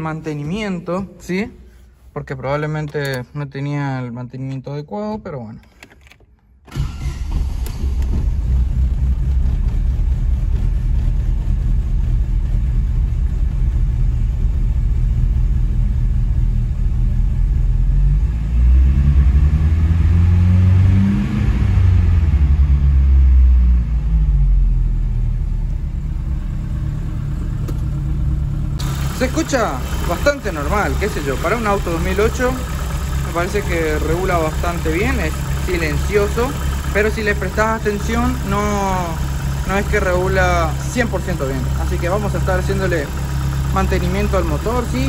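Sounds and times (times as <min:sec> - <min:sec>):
car engine starting and idling: 0:05.6 - 0:45.0.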